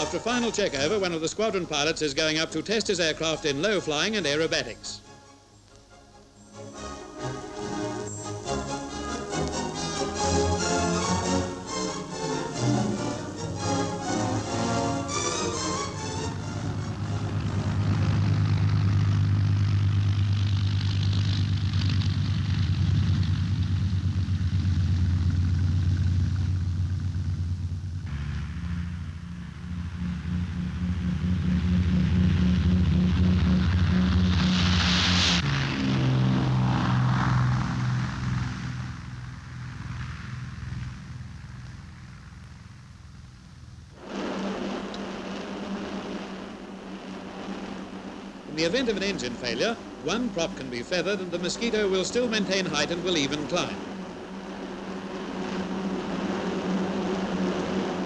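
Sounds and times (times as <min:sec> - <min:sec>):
aircraft taking off: 0:00.0 - 0:05.7, 0:06.6 - 0:58.0
aircraft engines running: 0:00.0 - 0:58.0
engine drone inside cockpit: 0:15.8 - 0:48.5, 0:53.2 - 0:58.0.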